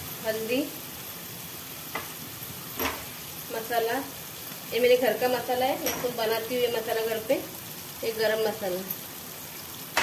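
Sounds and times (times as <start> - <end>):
oil sizzling in a pan: 0.0 - 10.0.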